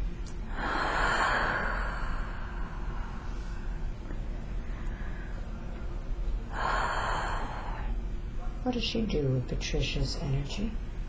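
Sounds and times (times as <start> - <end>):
woman breathing through mouth: 0.5 - 3.9, 6.5 - 8.0.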